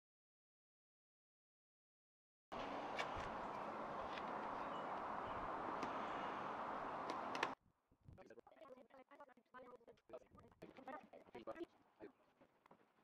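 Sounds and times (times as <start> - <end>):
faint clicks: 2.6 - 7.6.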